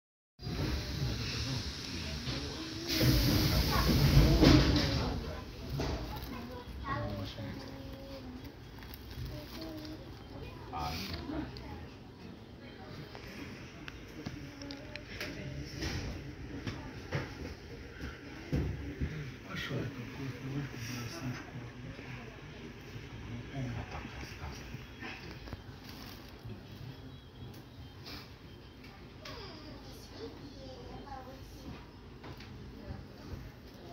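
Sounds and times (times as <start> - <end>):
train carriage rumble: 0.4 - 10.1, 13.3 - 20.1
faint passenger voices: 0.4 - 33.9.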